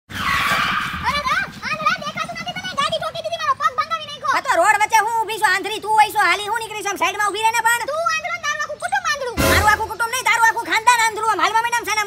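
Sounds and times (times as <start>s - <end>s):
motorcycle tyre skidding: 0.1s - 1.6s
person speaking: 9.4s - 10.6s.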